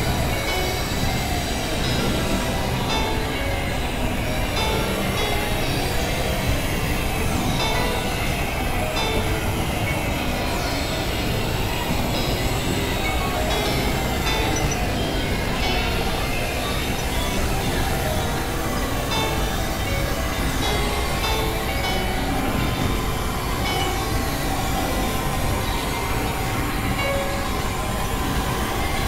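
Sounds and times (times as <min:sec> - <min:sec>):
synthesizer drone and noise: 0:00.0 - 0:29.0.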